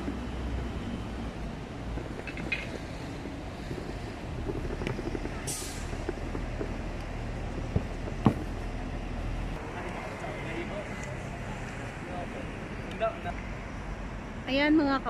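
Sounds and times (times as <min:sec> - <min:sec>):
bus engine rumble: 0:00.0 - 0:15.0.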